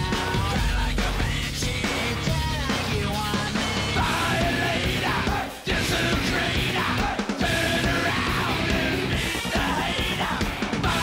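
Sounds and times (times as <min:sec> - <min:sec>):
heavy metal song: 0:00.0 - 0:11.0.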